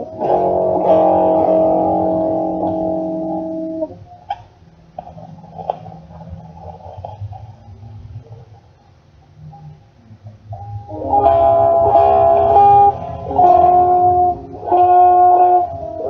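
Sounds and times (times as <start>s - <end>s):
guitar notes and strummed chords: 0.0s - 7.2s, 10.5s - 16.0s.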